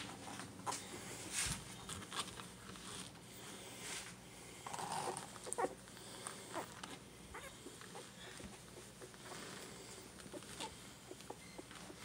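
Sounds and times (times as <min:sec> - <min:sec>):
fur rustling against mat: 0:00.0 - 0:04.2
puppies squeaking and whimpering: 0:04.7 - 0:12.0.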